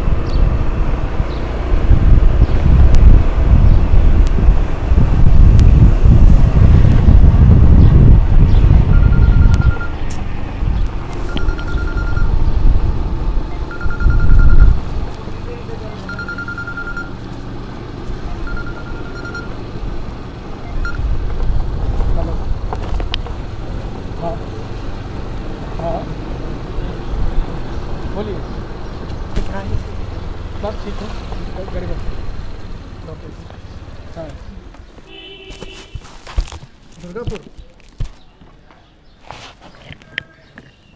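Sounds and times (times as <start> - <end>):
wind buffeting microphone: 0.0 - 15.4, 19.6 - 25.6
two-wheeler running: 0.0 - 35.4
high beep: 8.9 - 10.0, 11.2 - 12.4, 13.5 - 14.8, 16.0 - 17.2, 18.4 - 19.6, 20.6 - 21.0.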